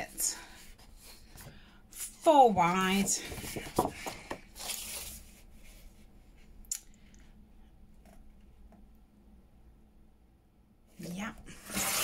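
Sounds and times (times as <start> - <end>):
paper rustling and sliding: 0.5 - 6.4.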